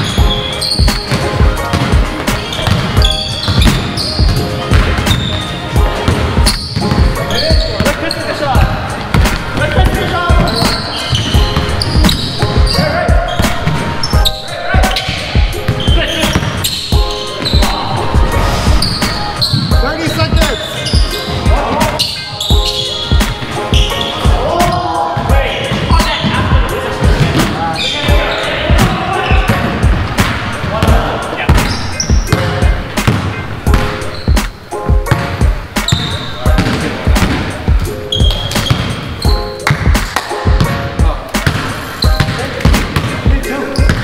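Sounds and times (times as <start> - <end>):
shoe squeaks: 0.0 - 5.8, 6.4 - 8.6, 9.4 - 25.1, 25.7 - 26.5, 27.4 - 28.6, 29.2 - 29.6, 31.4 - 32.6, 33.9 - 34.7, 35.8 - 36.8, 38.0 - 39.7, 41.7 - 44.0
players' voices: 0.0 - 44.0
basketball bouncing on hardwood floor: 2.6 - 5.3, 35.9 - 37.4, 38.2 - 38.9, 41.4 - 43.2, 43.8 - 44.0.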